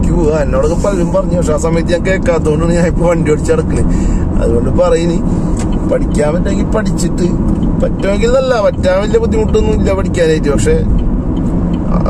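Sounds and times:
person's voice: 0.0 - 5.2, 5.9 - 10.9
car road and engine rumble: 0.0 - 12.0.

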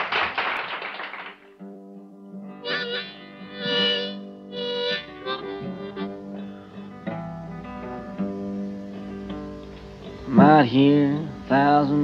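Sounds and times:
audience applause: 0.0 - 1.5
harmonica holding a chord: 1.9 - 11.4.

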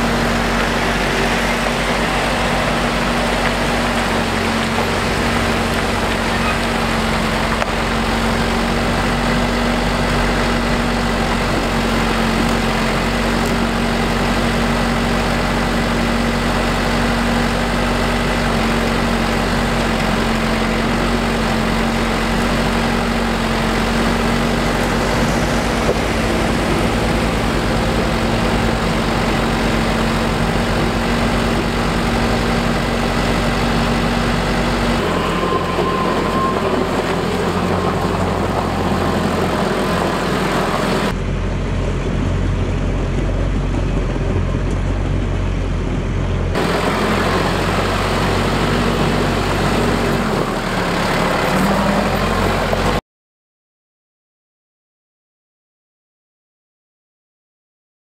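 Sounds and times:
tractor diesel engine running: 0.0 - 53.0.

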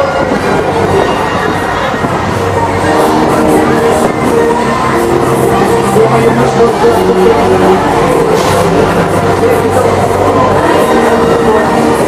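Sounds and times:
faint fairground music: 0.0 - 12.0
fairground ride rumble and rattle: 0.0 - 12.0.

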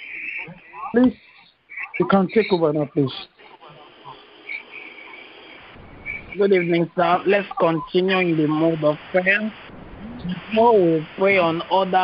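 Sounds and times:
insect chirping: 0.0 - 11.8
call line hiss: 0.0 - 12.0
person speaking: 6.4 - 9.6, 10.2 - 12.0.

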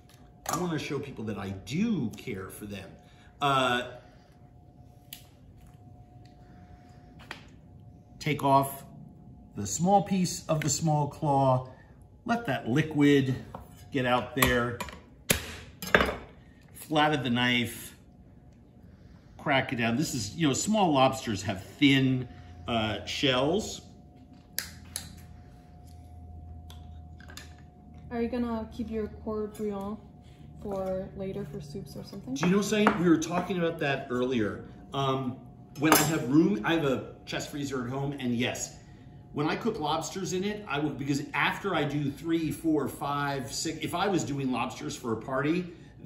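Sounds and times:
faint steady hum: 0.0 - 46.0.

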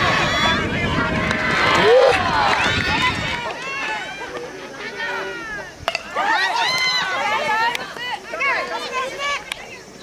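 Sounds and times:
voices shouting and calling out: 0.0 - 10.0.

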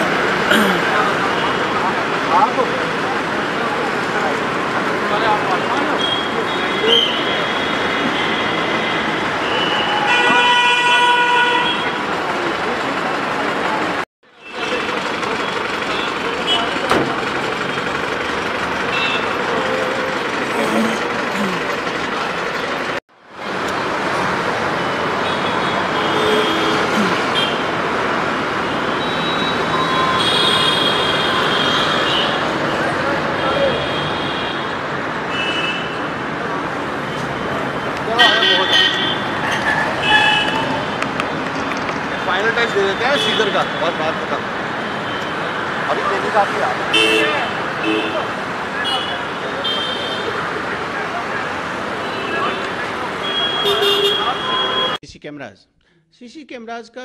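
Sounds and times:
people's voices: 0.0 - 7.2, 19.2 - 22.7, 25.9 - 27.4
road traffic noise: 0.0 - 55.0
vehicle horns honking: 5.9 - 12.1, 18.9 - 21.7, 24.8 - 27.8, 28.6 - 36.2, 37.1 - 41.0, 42.6 - 44.2, 46.8 - 50.6, 51.9 - 55.0
indistinct voices: 18.7 - 23.0.

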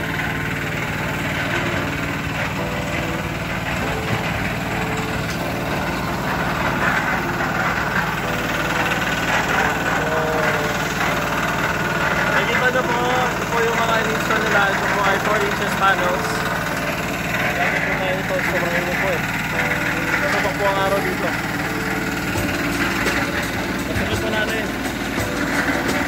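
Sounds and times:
engine running with low hum: 0.0 - 26.0
indistinct voices: 1.2 - 26.0.

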